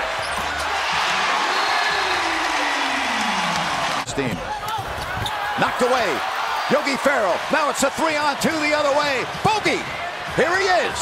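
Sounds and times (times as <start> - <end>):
arena crowd cheering and applauding: 0.0 - 11.0.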